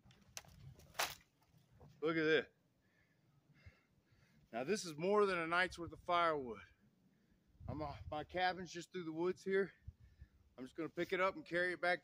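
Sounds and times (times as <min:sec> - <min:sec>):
branch cracking: 0:00.0 - 0:01.9
dry branches being handled: 0:00.0 - 0:02.1.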